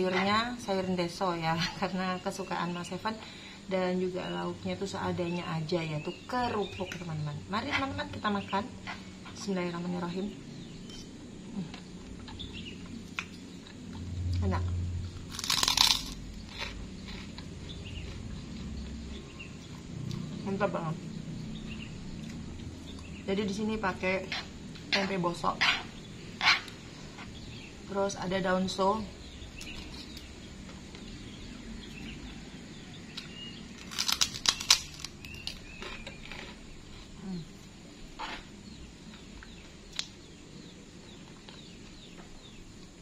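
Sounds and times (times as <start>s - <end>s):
birds chirping: 0.0s - 43.0s
chewing crunches: 15.1s - 20.3s, 33.1s - 37.2s
cracker crunching: 15.1s - 20.3s, 33.1s - 37.2s.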